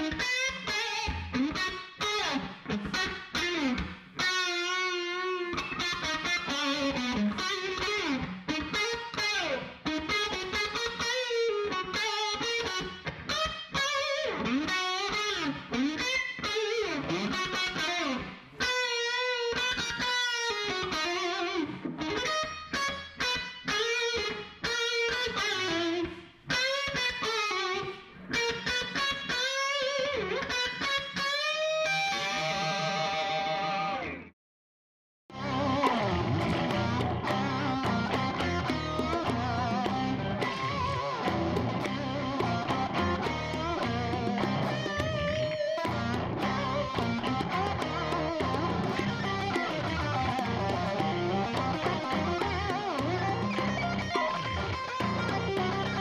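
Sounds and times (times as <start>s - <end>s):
distorted electric guitar lead: 0.0s - 34.3s, 35.3s - 56.0s.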